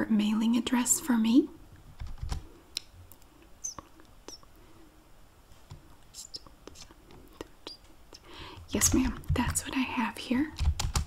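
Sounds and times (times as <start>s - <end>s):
soft mouth sounds: 2.7s - 4.6s, 5.9s - 8.5s.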